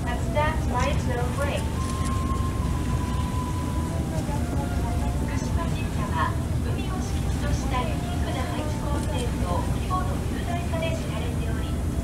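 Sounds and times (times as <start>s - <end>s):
ferry engine rumbling: 0.0s - 12.0s
passengers chattering: 0.0s - 12.0s.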